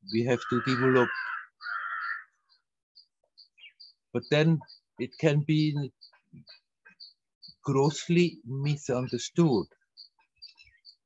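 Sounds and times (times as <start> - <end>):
small bird chirping: 0.0 - 11.0
crow cawing: 0.1 - 2.6.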